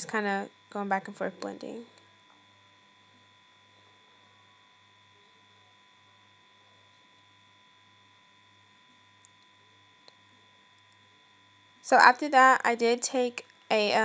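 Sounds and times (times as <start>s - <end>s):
faint steady hum: 0.0s - 14.0s.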